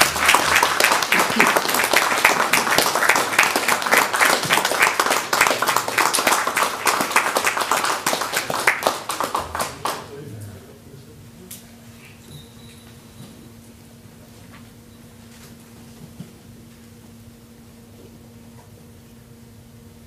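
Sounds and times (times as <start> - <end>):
audience applauding: 0.0 - 10.5.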